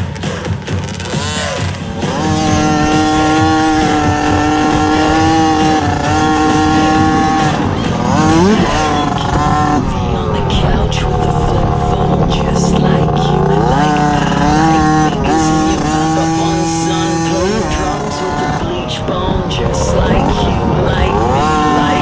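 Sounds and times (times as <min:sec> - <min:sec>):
dirt bike engine at high revs: 0:00.0 - 0:22.0.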